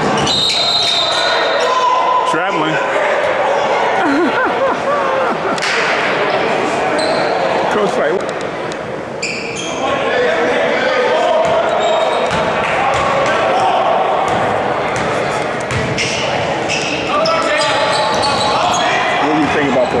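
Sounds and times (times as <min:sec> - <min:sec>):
crowd voices and shouting: 0:00.0 - 0:20.0
short high squeaks: 0:09.2 - 0:09.8.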